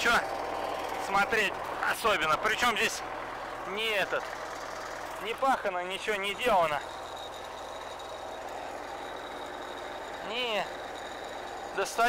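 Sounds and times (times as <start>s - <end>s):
tractor diesel engine running: 0.0s - 12.0s
faint high whine: 3.9s - 12.0s.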